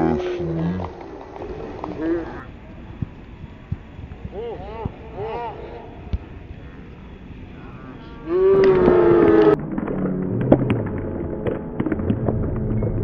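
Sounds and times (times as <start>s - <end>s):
people clapping: 0.0s - 4.9s, 8.3s - 13.0s
crowd noise: 0.0s - 13.0s
soccer ball kick: 2.8s - 5.1s, 6.0s - 6.6s, 8.6s - 13.0s.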